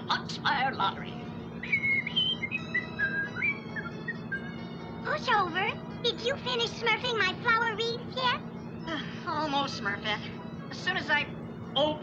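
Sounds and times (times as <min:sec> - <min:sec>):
person whistling a tune: 0:01.6 - 0:04.6.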